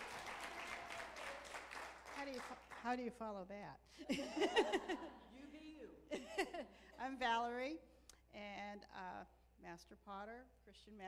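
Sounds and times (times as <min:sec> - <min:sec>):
audience applauding: 0:00.0 - 0:02.8.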